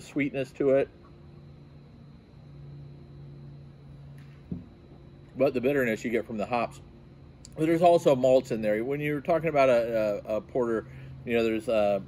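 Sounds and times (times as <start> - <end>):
low steady machine hum: 0.0 - 12.0.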